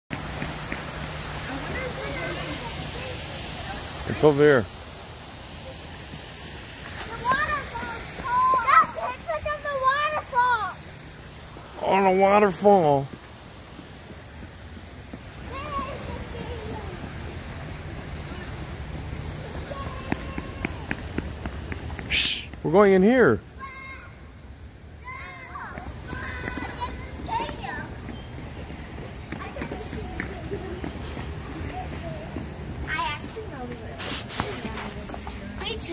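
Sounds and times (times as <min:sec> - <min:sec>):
waterfall rushing over rocks: 0:00.1 - 0:16.5
quick footsteps on concrete: 0:06.0 - 0:09.1, 0:13.0 - 0:22.7, 0:25.7 - 0:35.9.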